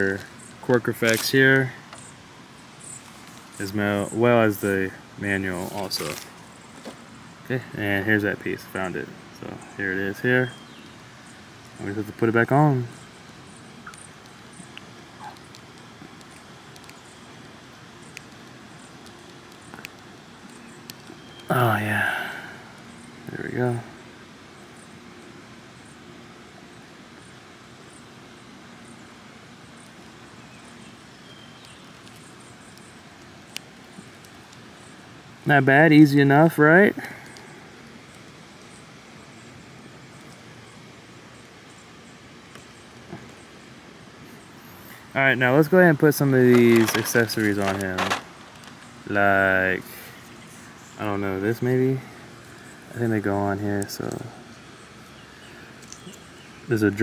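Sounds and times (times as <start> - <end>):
faint outdoor background: 0.0 - 57.0
plastic parts clicking: 46.5 - 48.9.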